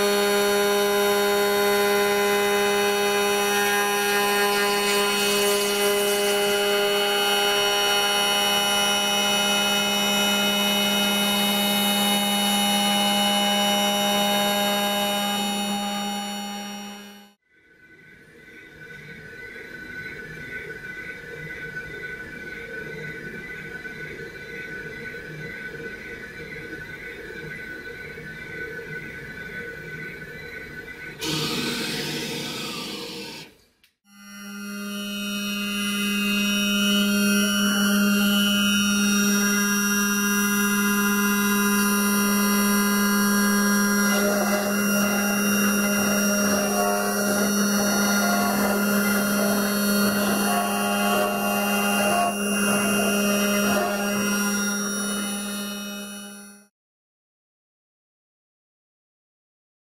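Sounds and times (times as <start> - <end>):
cutter rasping through wood: 0.0 - 17.2, 34.3 - 56.6
milling machine spindle whining: 0.0 - 17.2, 31.2 - 33.6, 34.4 - 56.6.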